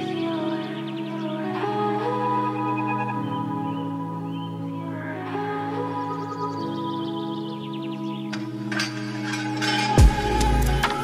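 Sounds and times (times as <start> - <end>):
calm instrumental music: 0.0 - 11.0.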